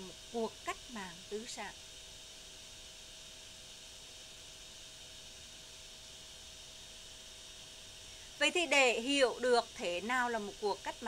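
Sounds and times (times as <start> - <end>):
faint steady hiss: 0.0 - 11.0
low constant hum: 0.0 - 11.0.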